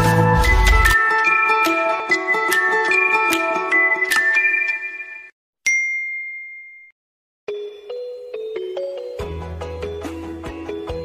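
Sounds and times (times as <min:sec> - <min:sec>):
bright ding: 0:04.5 - 0:07.0.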